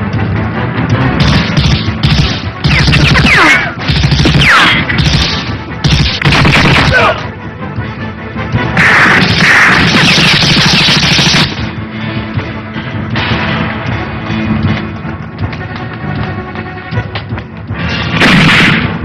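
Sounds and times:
background film music: 0.0s - 19.0s
gunfire: 1.2s - 7.2s, 8.8s - 11.7s, 18.1s - 19.0s
explosions: 18.1s - 19.0s.

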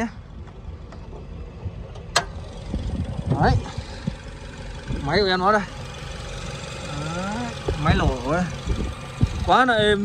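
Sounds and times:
car engine idling: 0.0s - 10.0s
hood latch click: 1.9s - 2.4s.

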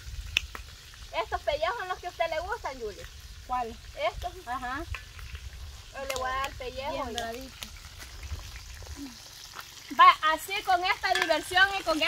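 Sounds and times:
chicken sizzling in oil: 0.0s - 12.0s.

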